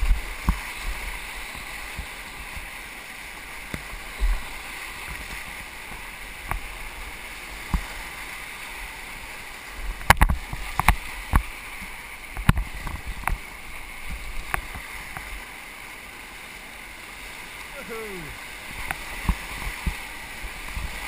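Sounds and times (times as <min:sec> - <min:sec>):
paddle splashes: 0:00.0 - 0:21.0
whitewater rapids rushing: 0:00.0 - 0:21.0
water hitting boat: 0:09.8 - 0:15.4.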